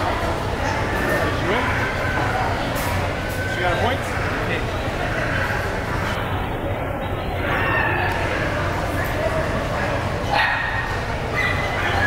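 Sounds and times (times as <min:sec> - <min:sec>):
murmur of background talk: 0:00.0 - 0:12.0
dog yipping: 0:10.3 - 0:12.0.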